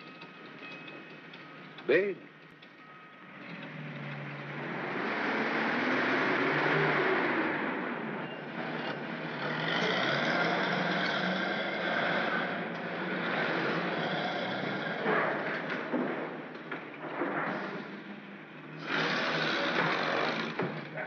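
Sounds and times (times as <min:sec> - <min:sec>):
bus engine: 0:00.0 - 0:21.0
vehicle engine and road noise: 0:00.0 - 0:21.0.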